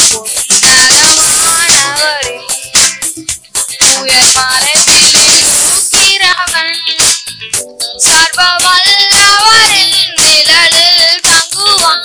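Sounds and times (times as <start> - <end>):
boys singing into microphones: 0.0 - 2.8, 3.7 - 7.0, 8.0 - 12.0
keyboard playing chords: 0.0 - 12.0
steady drum rhythm: 0.0 - 12.0.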